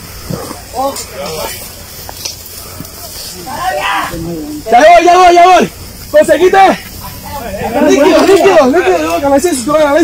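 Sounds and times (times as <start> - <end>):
faint steady hiss: 0.0 - 10.0
people shouting: 0.2 - 10.0
loud drawn-out shout: 3.0 - 5.7.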